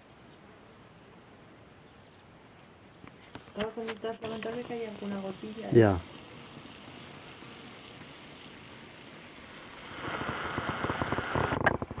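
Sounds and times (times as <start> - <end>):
wind on microphone: 9.8 - 12.0.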